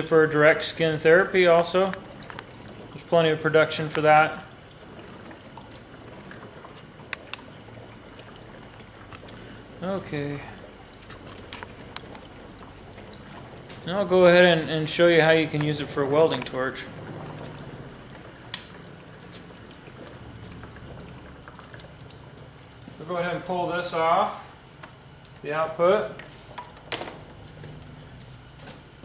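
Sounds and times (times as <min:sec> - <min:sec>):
gas bubbling through water: 0:00.0 - 0:23.0
low steady hum: 0:00.0 - 0:29.0.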